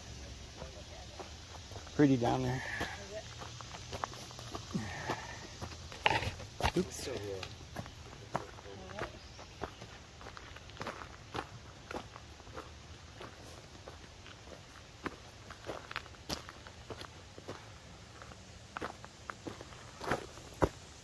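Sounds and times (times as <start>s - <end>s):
footsteps on dry leaves: 0.4s - 21.0s.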